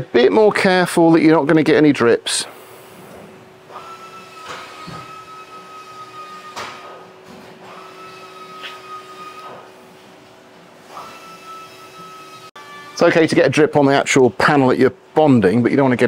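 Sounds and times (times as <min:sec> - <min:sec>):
machine whine: 0:03.1 - 0:10.0, 0:10.7 - 0:13.4.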